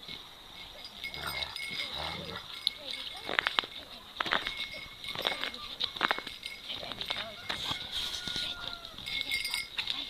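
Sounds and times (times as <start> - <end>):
dogs growling: 1.0 - 2.7.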